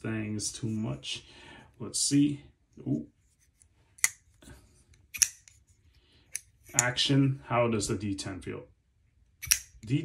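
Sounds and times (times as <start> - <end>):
folding knife metallic clicks: 5.1 - 5.6, 9.4 - 9.9.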